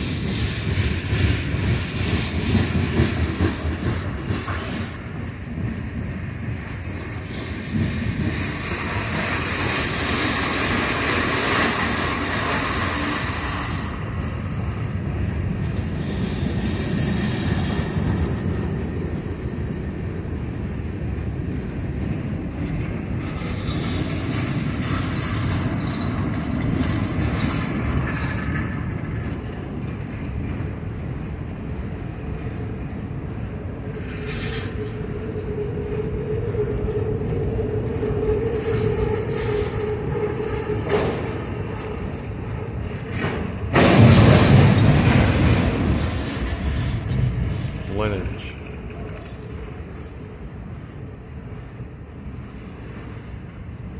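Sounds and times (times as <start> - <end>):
freight train wheels rumbling: 0.0 - 53.9
wheel squeal: 23.2 - 29.3, 33.9 - 44.8.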